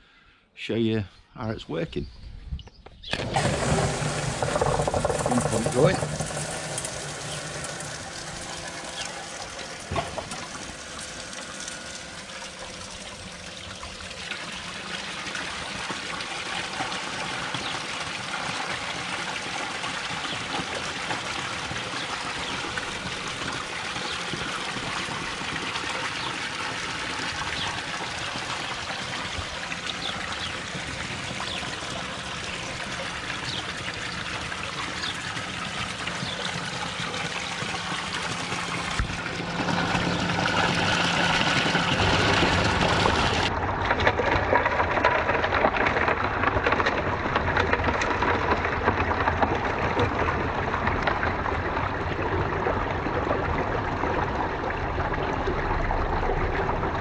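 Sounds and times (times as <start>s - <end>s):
water running down a sluice: 3.1s - 57.0s.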